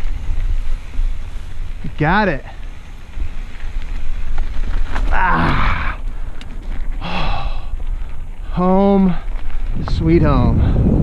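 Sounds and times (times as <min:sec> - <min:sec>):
bike tyres on gravel: 0:00.0 - 0:11.0
wind rumble on microphone: 0:00.0 - 0:11.0.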